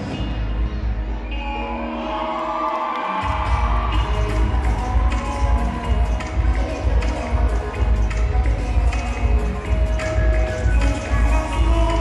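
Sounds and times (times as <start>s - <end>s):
audience cheering: 1.7s - 7.0s.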